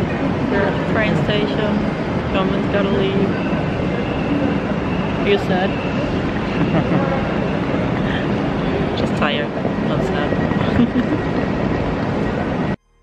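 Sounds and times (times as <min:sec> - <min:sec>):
crowd chatter: 0:00.0 - 0:12.8
hall background noise: 0:00.0 - 0:12.8.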